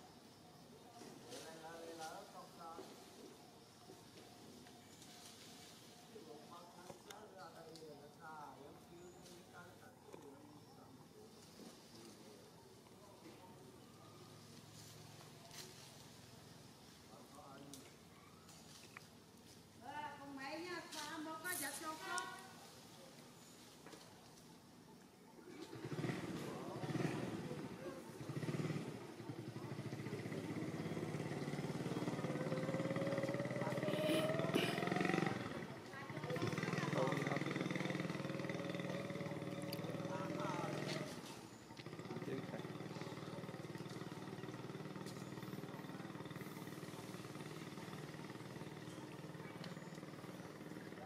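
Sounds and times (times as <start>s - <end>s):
people talking: 25.4s - 51.0s
motor engine running: 25.5s - 51.0s.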